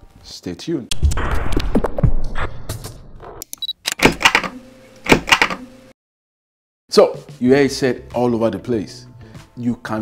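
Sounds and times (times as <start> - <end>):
quick clicks: 3.4 - 5.6.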